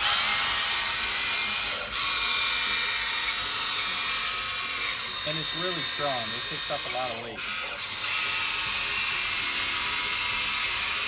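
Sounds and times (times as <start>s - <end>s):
small electric motors whining: 0.0s - 11.0s.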